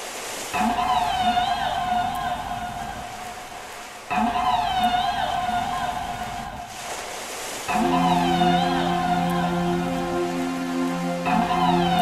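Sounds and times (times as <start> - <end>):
house music synth with pitch bends: 7.7 - 12.0.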